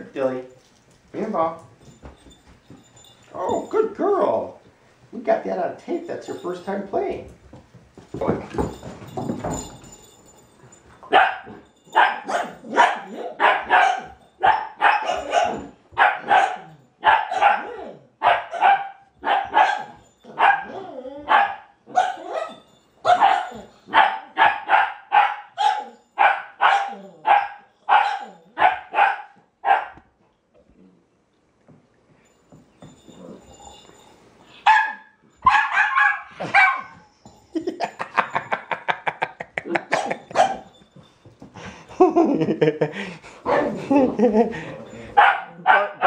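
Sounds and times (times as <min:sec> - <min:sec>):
dog barking: 0:11.1 - 0:30.0, 0:34.7 - 0:36.9, 0:39.9 - 0:40.7, 0:43.5 - 0:43.8, 0:45.2 - 0:46.0.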